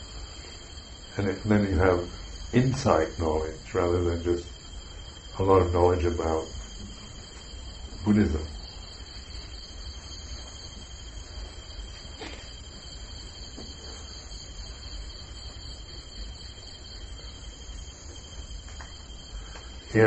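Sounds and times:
faint low hum: 0:00.0 - 0:20.0
insect chorus trilling: 0:00.0 - 0:20.0.

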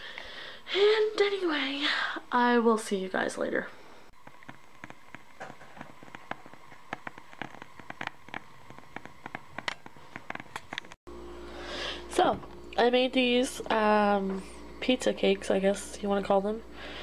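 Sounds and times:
candle wick crackling: 0:04.2 - 0:11.0.

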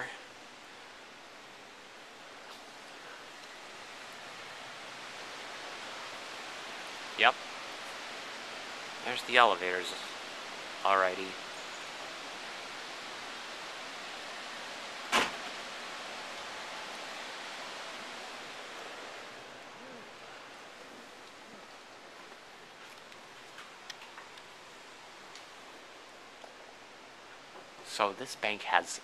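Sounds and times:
room noise hiss: 0:00.0 - 0:29.0.

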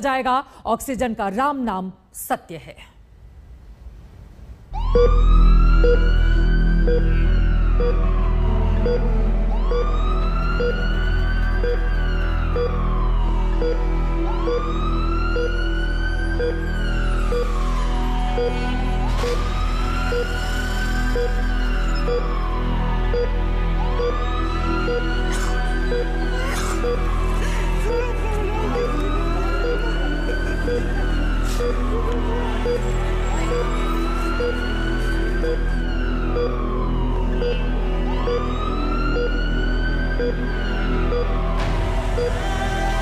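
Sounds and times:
background music: 0:04.7 - 0:43.0
low steady drone: 0:04.7 - 0:43.0
siren wail rising: 0:04.7 - 0:43.0.

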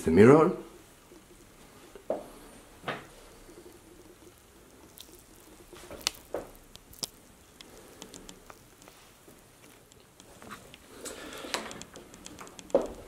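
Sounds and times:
faint room hum: 0:00.0 - 0:13.0.

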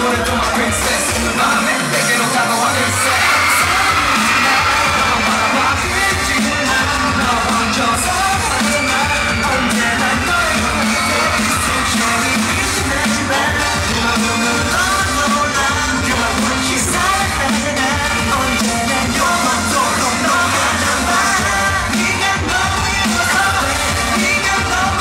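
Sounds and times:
male group singing pop song: 0:00.0 - 0:25.0.

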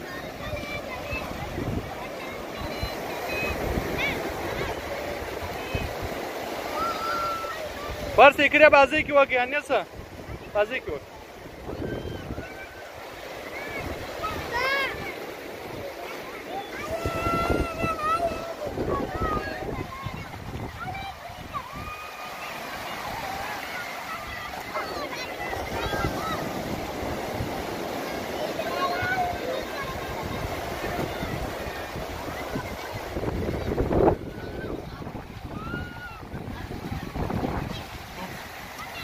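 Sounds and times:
wind buffeting microphone: 0:00.0 - 0:08.2, 0:09.9 - 0:16.0, 0:16.6 - 0:22.0, 0:22.6 - 0:39.0
small surf washing: 0:00.0 - 0:39.0
small waves breaking: 0:00.0 - 0:39.0
child's long high call: 0:06.7 - 0:08.0, 0:16.5 - 0:20.1, 0:35.4 - 0:36.3.

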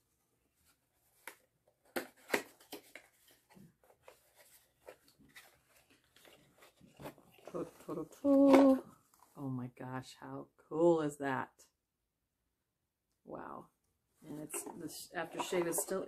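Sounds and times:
cardboard packaging being handled: 0:00.7 - 0:08.8.

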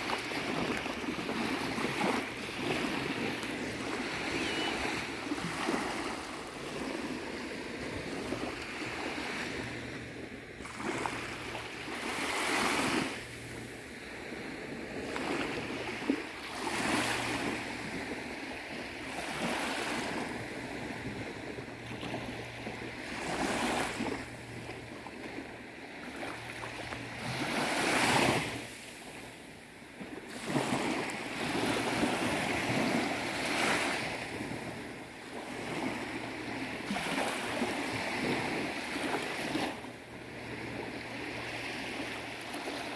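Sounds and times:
small waves breaking on beach: 0:00.0 - 0:42.9.

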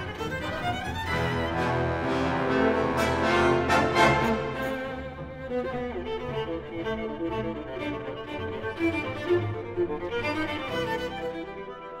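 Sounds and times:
viola with orchestral strings: 0:00.0 - 0:12.0.

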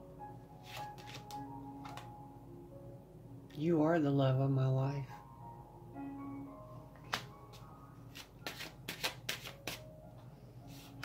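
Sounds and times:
card taps and flicks: 0:00.8 - 0:02.1, 0:08.2 - 0:09.8.

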